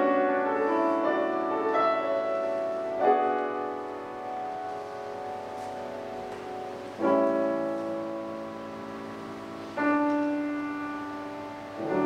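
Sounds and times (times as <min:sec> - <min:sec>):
soft grand piano notes: 0:00.0 - 0:12.0.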